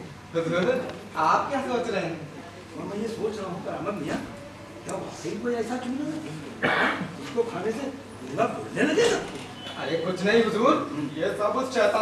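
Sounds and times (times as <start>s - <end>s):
harsh throat-clearing: 6.6s - 7.2s.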